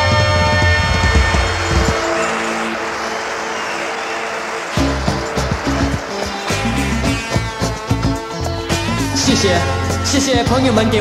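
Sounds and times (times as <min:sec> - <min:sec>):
rushing wash of noise: 0:00.0 - 0:10.2
pop music drums and bass: 0:04.8 - 0:11.0.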